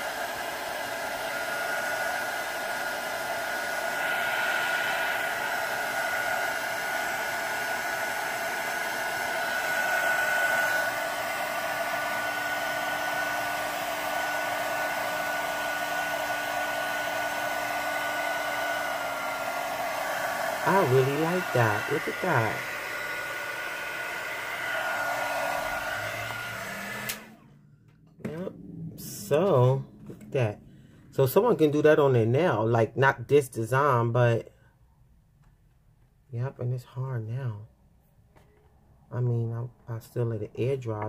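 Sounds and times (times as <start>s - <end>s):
electric dryer blowing with whine: 0.0s - 32.7s
low hum: 26.0s - 31.7s.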